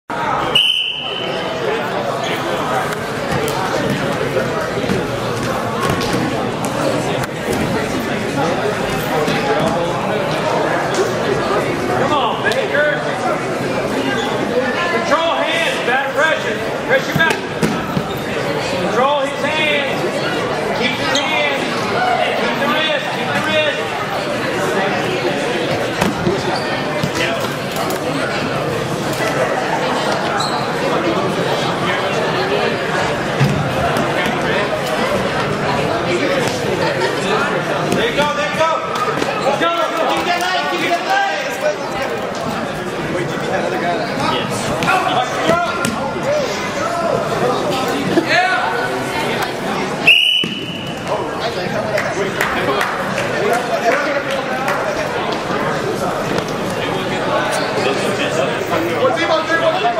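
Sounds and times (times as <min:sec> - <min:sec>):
crowd chatter: 0:00.0 - 0:59.9
referee's whistle blast: 0:00.5 - 0:01.4, 0:50.1 - 0:51.0.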